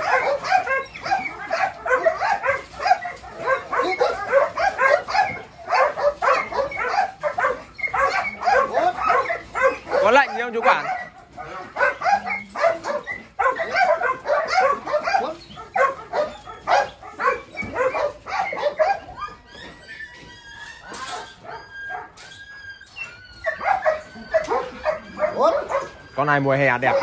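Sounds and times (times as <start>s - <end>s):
dog whining: 0.0s - 27.0s
people talking: 25.3s - 27.0s.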